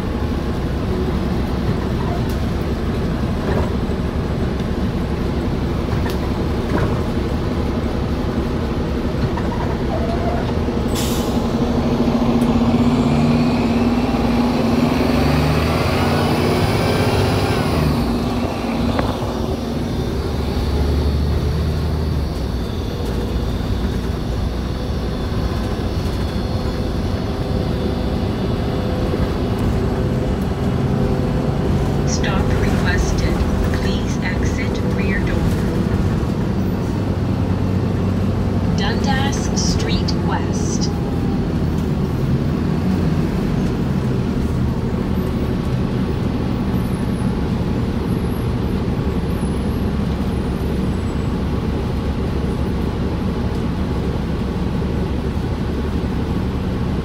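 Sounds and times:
bus diesel engine running: 0.0s - 57.0s.

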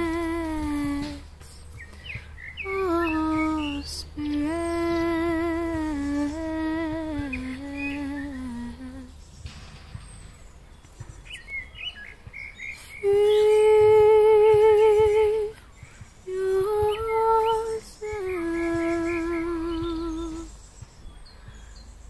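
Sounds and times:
woman singing wordless notes: 0.0s - 9.2s, 12.7s - 20.7s
birds chirping: 0.0s - 22.0s.

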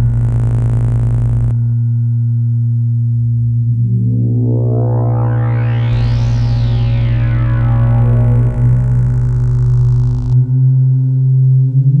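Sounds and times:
dark ambient synthesizer music: 0.0s - 12.0s
low synthesizer drone: 0.0s - 12.0s.

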